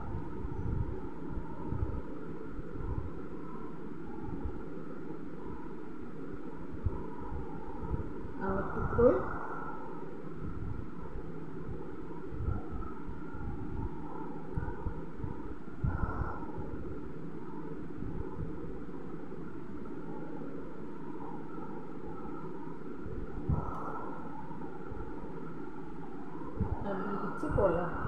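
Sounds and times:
low background rumble: 0.0s - 28.0s.

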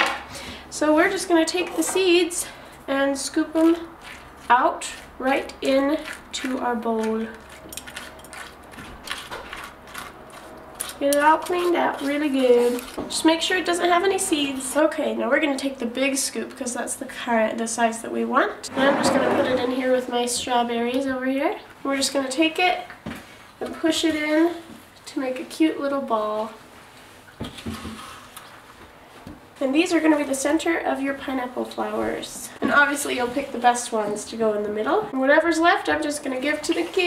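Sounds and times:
scoop scraping melon seeds: 3.5s - 13.0s.

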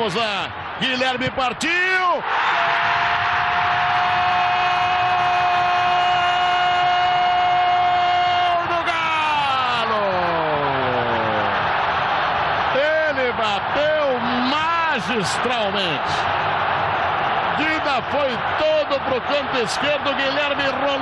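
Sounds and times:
stadium crowd cheering: 0.0s - 21.0s
commentator shouting: 12.8s - 16.2s.

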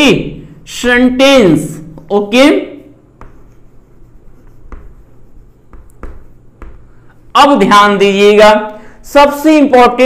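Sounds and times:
chalk taps: 1.8s - 7.4s
chalk scratching on blackboard: 2.0s - 7.6s.

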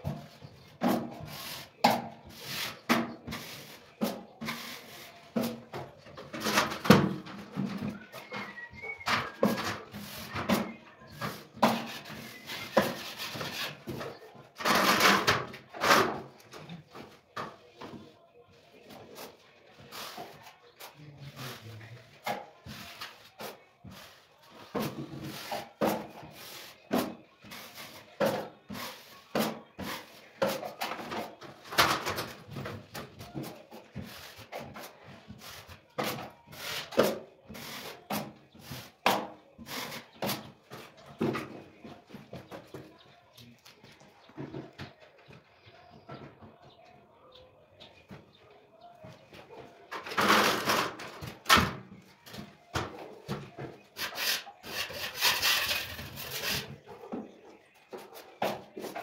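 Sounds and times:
drywall knife scraping: 9.2s - 16.2s, 34.0s - 40.5s, 54.0s - 56.8s.

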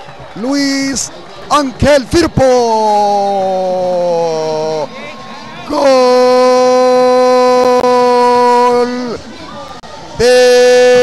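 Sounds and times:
man shouting long high cry: 5.7s - 9.2s, 10.2s - 11.0s.

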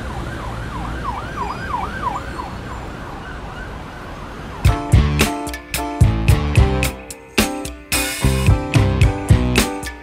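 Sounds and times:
electronic siren yelping: 0.0s - 5.0s.

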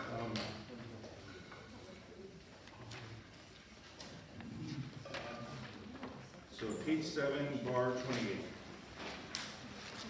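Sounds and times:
faint murmuring voices: 0.0s - 7.0s
paper pages rustling: 8.0s - 10.0s.

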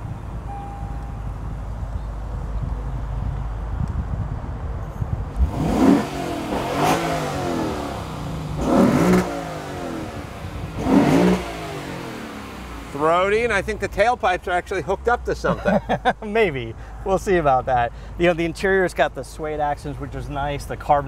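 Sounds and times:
car engine idling and revving: 0.0s - 16.8s.

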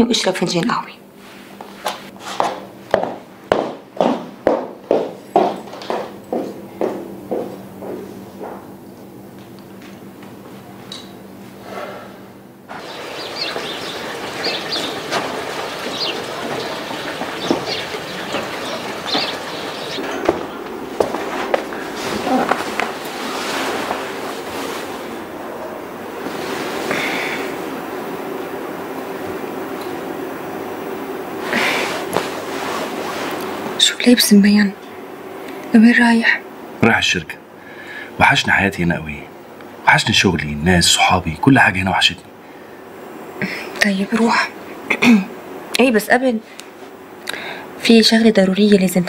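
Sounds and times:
footsteps of hard-soled shoes: 1.6s - 8.7s, 16.4s - 24.1s.

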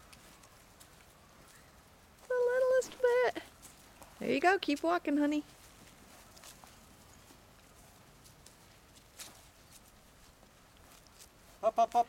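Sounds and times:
small footsteps in dry leaves: 0.0s - 12.0s.

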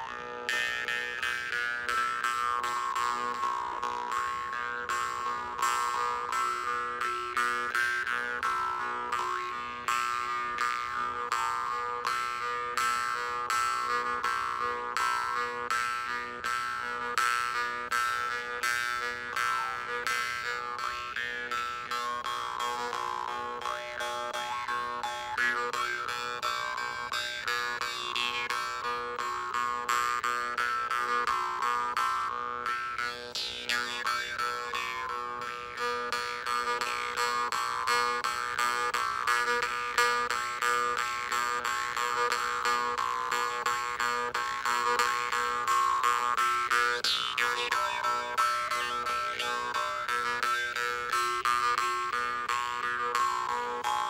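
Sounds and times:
jaw harps plucking: 0.0s - 54.0s.

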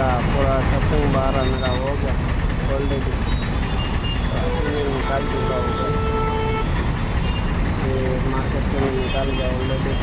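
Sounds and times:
road traffic rumble: 0.0s - 10.0s
vehicle horn: 4.4s - 7.4s.

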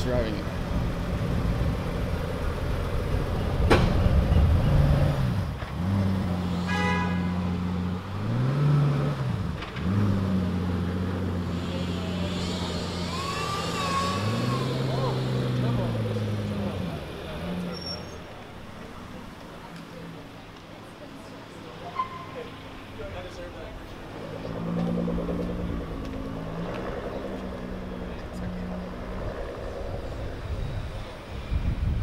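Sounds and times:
car engine idling and revving: 0.0s - 32.0s
voices of onlookers: 11.1s - 31.9s.

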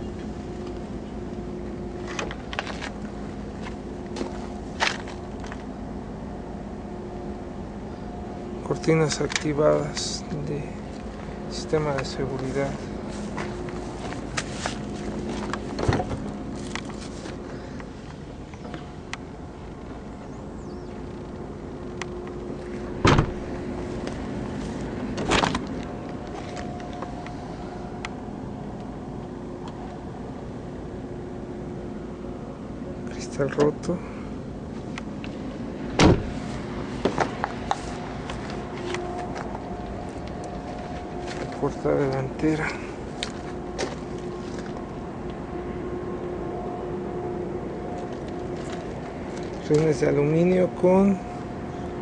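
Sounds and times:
faint steady tones: 0.0s - 52.0s
steady low hum: 0.0s - 52.0s
sharp knocks inside car: 23.0s - 23.4s, 36.0s - 36.4s.

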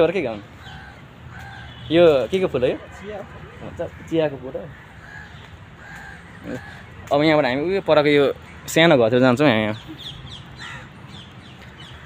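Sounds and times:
birds calling: 0.0s - 12.0s
outdoor background noise: 0.0s - 12.0s.

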